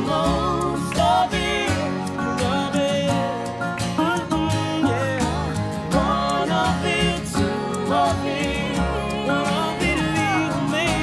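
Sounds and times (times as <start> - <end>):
accordion: 0.0 - 11.0
strummed acoustic guitars: 0.0 - 11.0
upright bass: 0.0 - 11.0
voices singing: 0.0 - 11.0.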